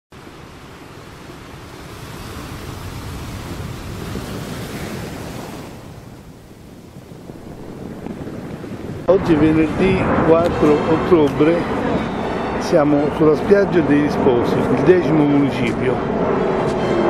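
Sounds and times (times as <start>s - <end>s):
surf breaking on beach: 0.2s - 15.6s.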